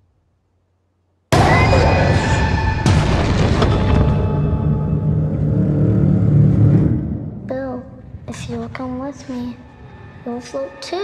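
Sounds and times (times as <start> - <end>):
low rumbling drone: 1.4 - 11.0.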